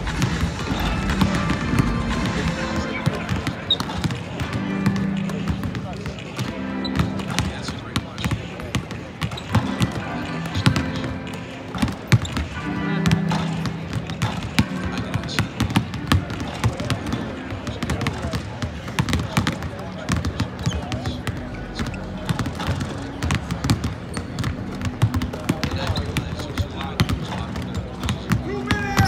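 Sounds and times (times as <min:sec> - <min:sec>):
music playing: 0:00.0 - 0:18.3, 0:19.7 - 0:29.0
basketballs bouncing on hardwood: 0:00.0 - 0:29.0.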